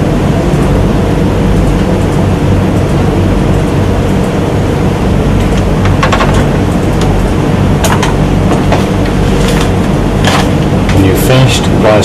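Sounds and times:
loud low hum: 0:00.0 - 0:12.0.

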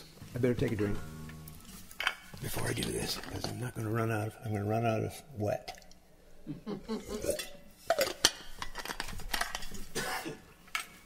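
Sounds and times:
drink container clinking: 0:07.3 - 0:09.8.

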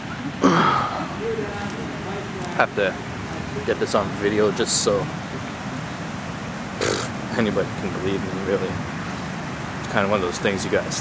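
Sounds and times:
ocean surf breaking: 0:00.0 - 0:11.0
short hiss: 0:06.8 - 0:07.1.

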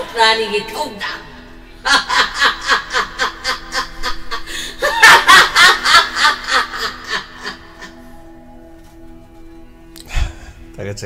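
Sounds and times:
woman laughing heartily: 0:01.8 - 0:08.2.

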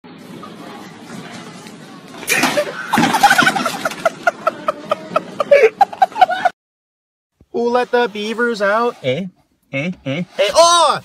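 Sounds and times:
person cackling laughter: 0:02.6 - 0:06.5.

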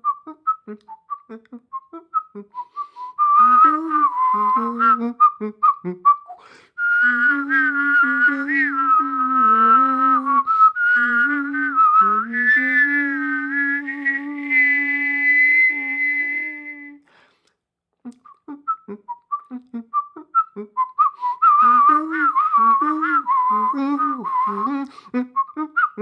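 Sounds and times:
person whistling and singing: 0:00.0 - 0:17.1, 0:18.1 - 0:26.0.

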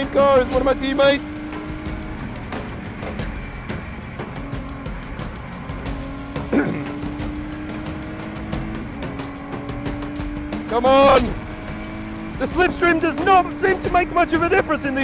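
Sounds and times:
race car engine at high revs: 0:00.0 - 0:15.0
road and wind noise: 0:00.0 - 0:15.0.

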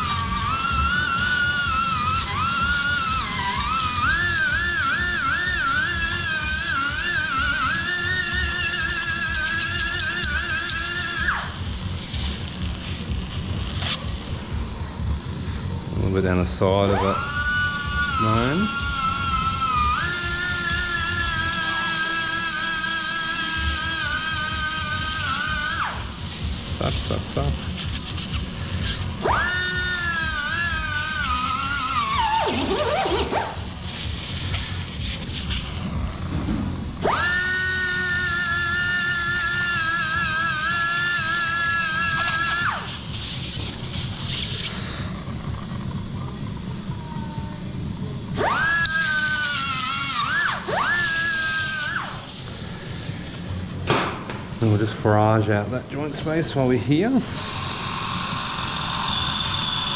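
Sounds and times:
surgical burr whining: 0:00.0 - 0:59.9.

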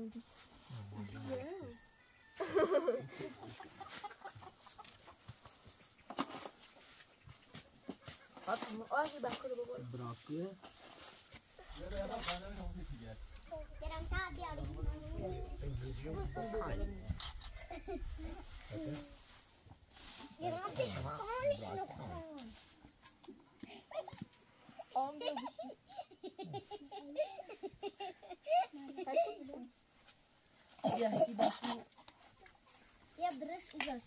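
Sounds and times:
children and adults talking: 0:08.4 - 0:10.3, 0:11.4 - 0:19.3, 0:20.1 - 0:26.0, 0:30.7 - 0:34.0.

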